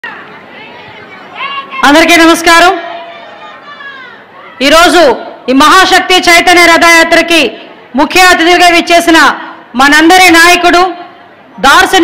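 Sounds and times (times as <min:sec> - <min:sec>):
background chatter: 0:00.0 - 0:05.5
woman speaking into a microphone: 0:00.6 - 0:03.1, 0:04.5 - 0:12.0.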